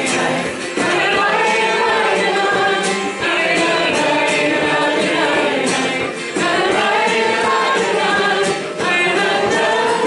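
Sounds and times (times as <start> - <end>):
frame drum beats: 0.0 - 10.0
voices singing folk song: 0.0 - 10.0.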